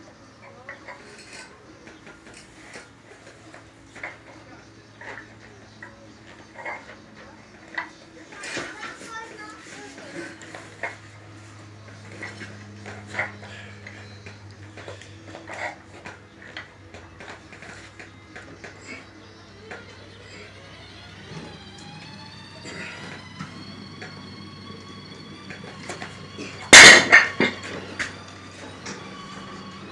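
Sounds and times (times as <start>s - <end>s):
steady low hum: 0.0s - 29.9s.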